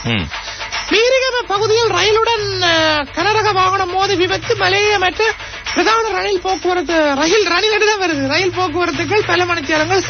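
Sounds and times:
person speaking: 0:00.0 - 0:10.0.

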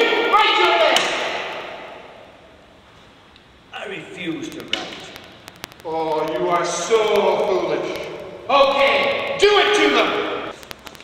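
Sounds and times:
man shouting with echo: 0:00.0 - 0:01.3, 0:08.5 - 0:10.5
low room hiss: 0:00.0 - 0:11.0.

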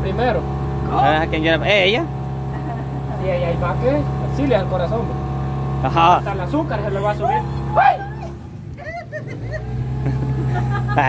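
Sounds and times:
boat motor humming: 0:00.0 - 0:11.0.

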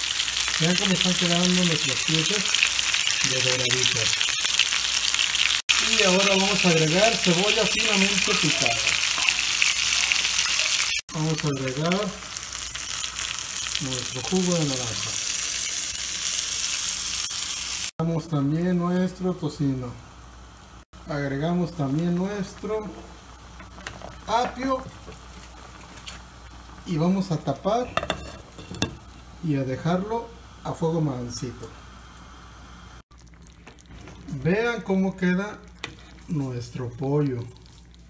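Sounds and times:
meat sizzling in a skillet: 0:00.0 - 0:33.7
juice crackling and bubbling: 0:33.1 - 0:34.4.

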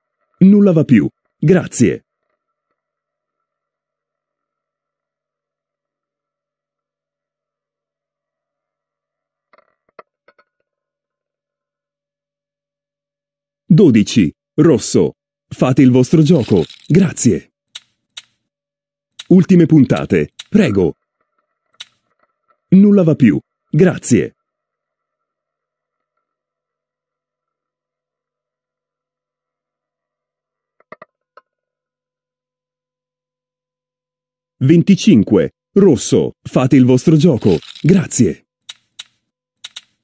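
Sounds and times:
ball rattling in pocket: 0:16.1 - 0:18.4, 0:19.2 - 0:20.8, 0:37.2 - 0:40.0
roulette ball clicking: 0:17.7 - 0:18.4, 0:19.2 - 0:20.7, 0:21.7 - 0:22.2, 0:30.8 - 0:31.5, 0:38.6 - 0:40.0.

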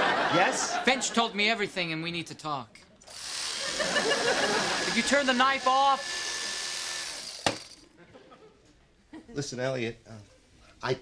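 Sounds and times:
electric knife motor buzzing: 0:03.1 - 0:07.9.

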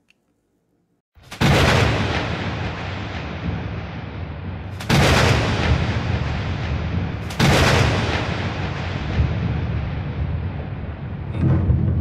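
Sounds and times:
heavy booming hits: 0:01.4 - 0:12.0
steady low rumble: 0:02.4 - 0:12.0.

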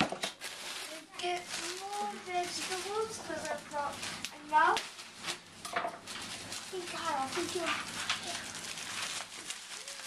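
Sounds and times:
plastic bag rustling and crinkling: 0:00.0 - 0:10.0.

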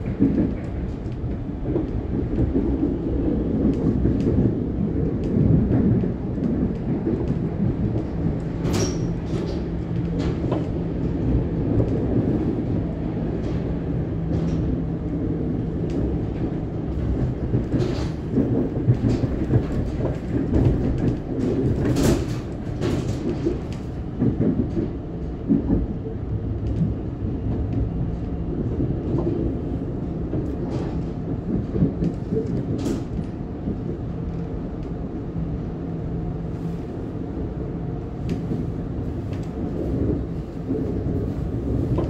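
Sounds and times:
train wheels rumbling on rail: 0:00.0 - 0:42.0.

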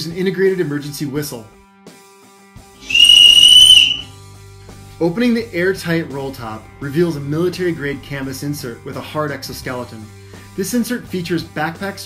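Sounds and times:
high-pitched whistle blast: 0:02.8 - 0:04.1.

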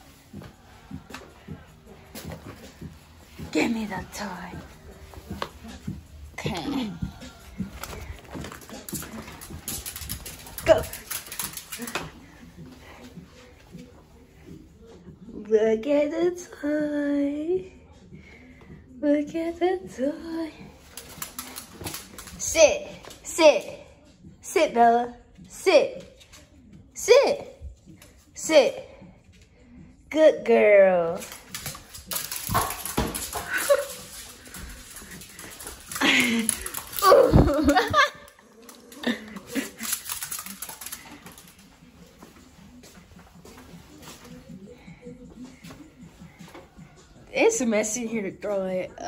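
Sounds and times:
dog claws clicking on wooden floor: 0:07.5 - 0:12.2, 0:20.9 - 0:22.4, 0:31.2 - 0:41.6.

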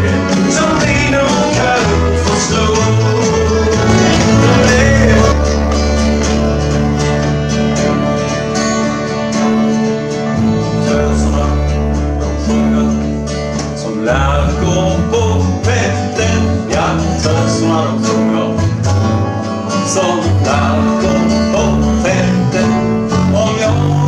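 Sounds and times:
man singing: 0:00.0 - 0:06.7, 0:10.4 - 0:18.9, 0:19.7 - 0:24.0
acoustic string band playing bluegrass: 0:00.0 - 0:24.0
fiddle playing: 0:01.2 - 0:12.4.

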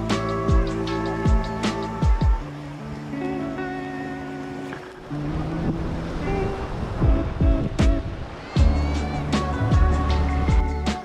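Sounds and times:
background music with percussive hits: 0:00.0 - 0:02.4, 0:07.0 - 0:11.0
sea and water noise: 0:00.0 - 0:11.0.

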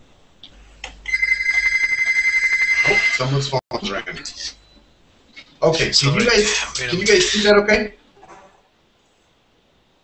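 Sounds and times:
phone ringing: 0:01.1 - 0:03.6.

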